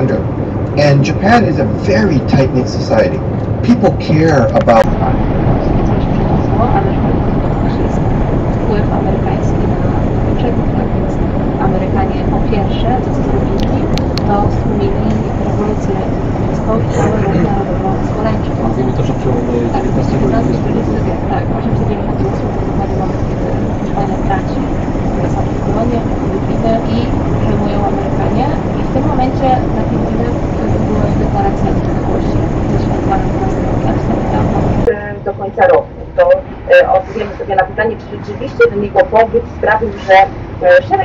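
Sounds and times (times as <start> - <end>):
lorry engine and road noise: 0.0 - 41.0
faint radio talk: 0.8 - 8.0, 8.7 - 24.6.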